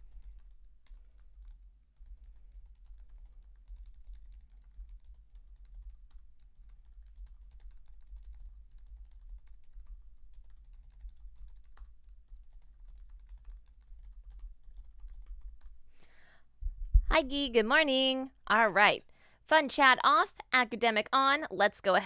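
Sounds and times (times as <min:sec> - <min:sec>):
fast typing on keyboard: 0:00.0 - 0:15.8
low steady hum: 0:00.0 - 0:21.0.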